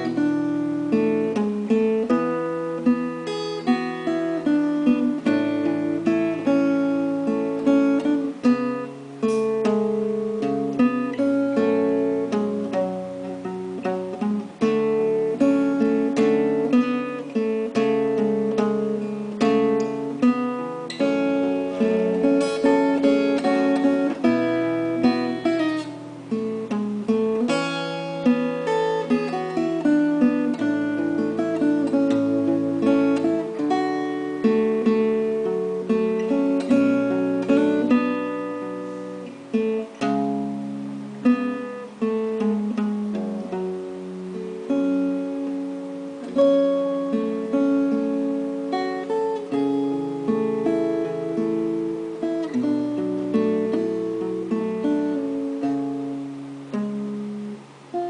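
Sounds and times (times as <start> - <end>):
acoustic guitar plucked: 0.0 - 58.0.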